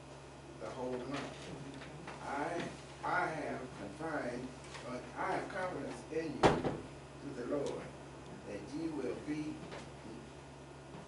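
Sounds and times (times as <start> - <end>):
man reading aloud: 0.6 - 6.6, 7.2 - 10.3.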